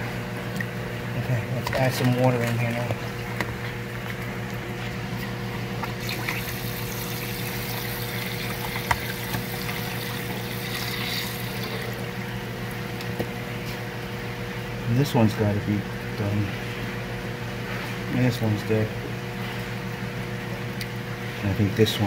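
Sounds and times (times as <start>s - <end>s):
steady low hum: 0.0s - 22.0s
water pouring into a tub: 5.9s - 12.0s.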